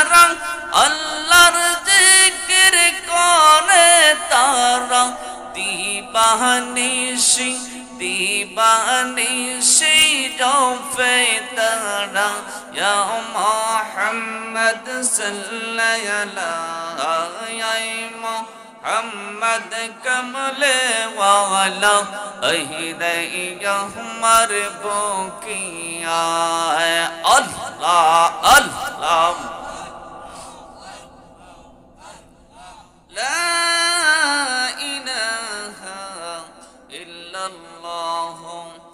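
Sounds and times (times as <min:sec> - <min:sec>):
man chanting melodically: 0:00.0 - 0:38.9.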